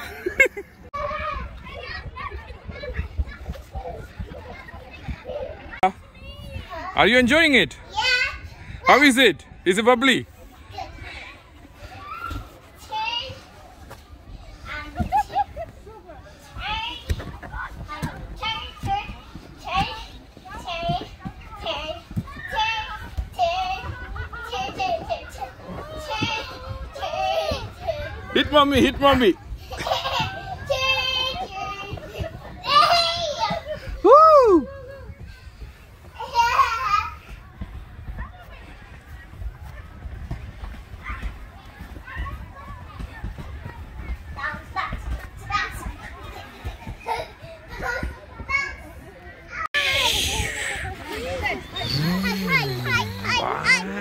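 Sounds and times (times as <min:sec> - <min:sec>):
girl's excited cries: 0:34.0 - 0:35.0.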